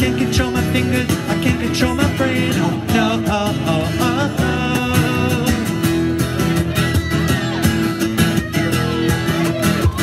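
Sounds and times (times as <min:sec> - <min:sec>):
acoustic guitars strumming chords: 0:00.0 - 0:10.0.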